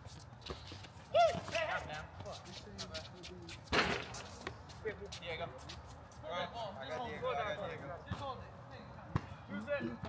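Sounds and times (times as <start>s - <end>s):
loud sharp smack: 3.7s - 4.1s.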